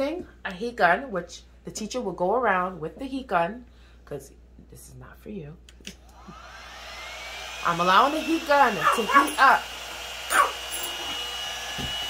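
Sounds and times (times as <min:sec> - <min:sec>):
heat gun blowing air: 0:06.0 - 0:12.0.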